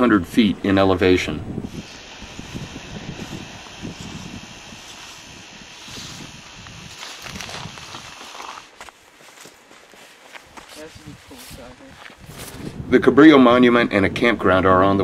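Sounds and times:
steady hiss: 0.3 - 13.8
footsteps on dirt trail: 1.7 - 12.8.

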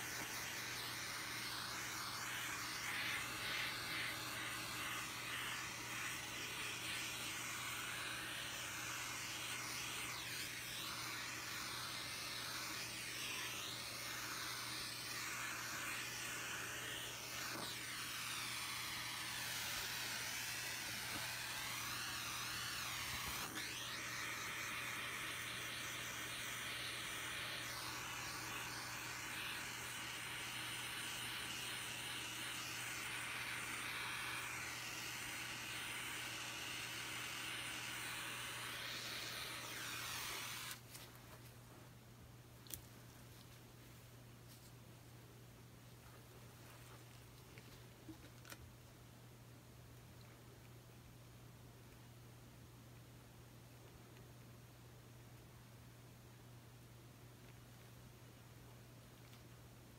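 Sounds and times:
butane torch flame hissing: 0.0 - 40.9.

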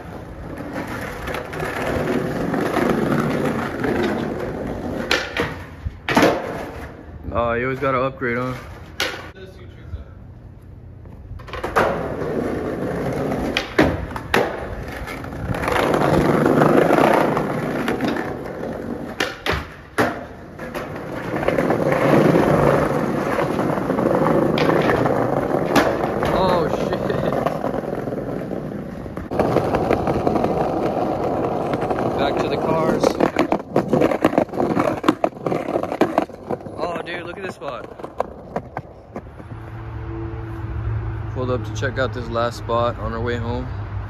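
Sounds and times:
skateboard clacking on ground: 0.0 - 7.0, 7.7 - 9.4, 11.4 - 39.5
skateboard wheels rolling on paving: 0.0 - 9.4, 10.4 - 39.8.

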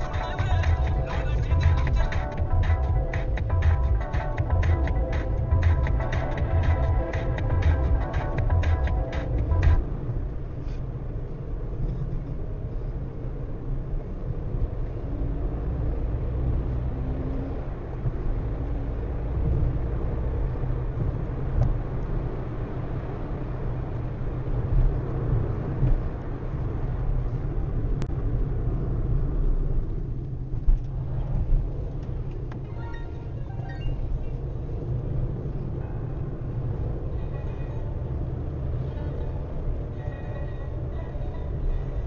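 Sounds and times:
car road and engine rumble: 0.0 - 42.0.

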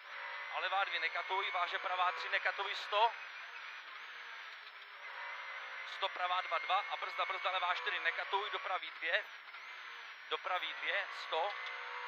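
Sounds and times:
car engine droning: 0.0 - 12.0
road noise: 0.0 - 12.0.

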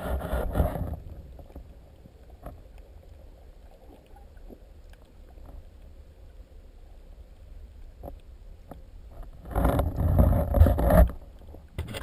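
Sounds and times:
muffled underwater rumble: 0.0 - 12.0.

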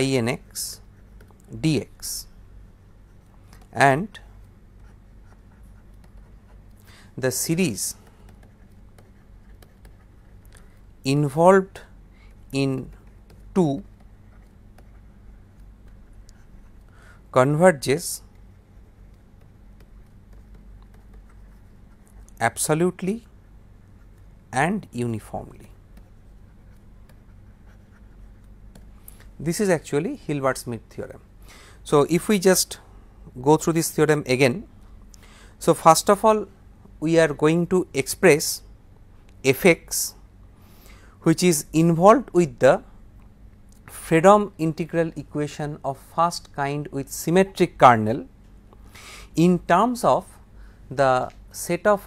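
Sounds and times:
steady low hum: 0.0 - 52.0
stylus scratching on pen tablet: 2.8 - 10.9, 18.3 - 22.4, 26.0 - 28.6.

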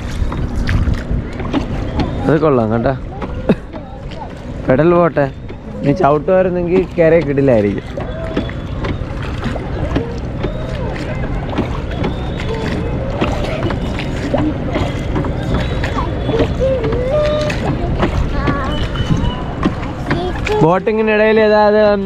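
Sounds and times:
oar splashes: 0.0 - 22.0
water rushing around boat hull: 0.0 - 22.0.

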